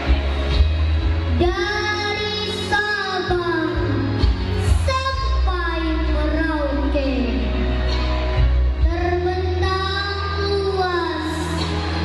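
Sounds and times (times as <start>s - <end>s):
backing music over loudspeakers: 0.0s - 12.0s.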